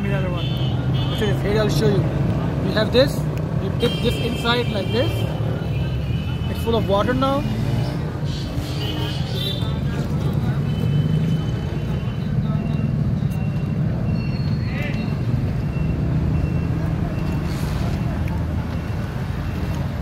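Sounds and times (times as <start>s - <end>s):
street traffic rumble: 0.0s - 20.0s.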